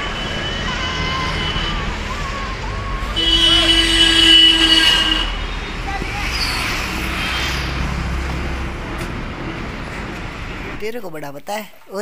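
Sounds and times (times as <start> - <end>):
high-pitched squeal: 0.0 - 8.2
road traffic rumble: 0.0 - 11.2.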